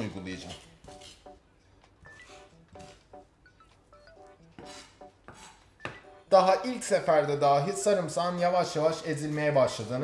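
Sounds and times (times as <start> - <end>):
knife scraping cutting board: 0.0 - 1.4, 2.0 - 3.2, 4.6 - 5.7
plucked background music: 0.0 - 10.0.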